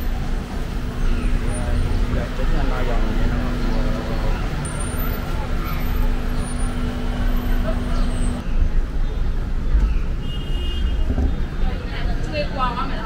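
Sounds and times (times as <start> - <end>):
traffic rumble: 0.0 - 13.0.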